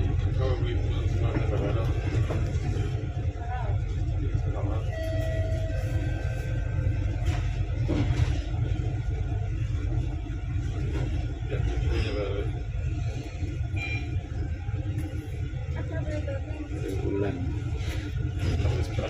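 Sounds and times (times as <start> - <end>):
bus engine rumble: 0.0 - 19.0.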